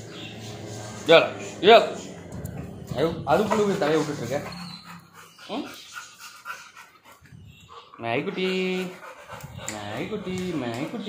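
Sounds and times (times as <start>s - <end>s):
dog panting: 0.1s - 11.0s.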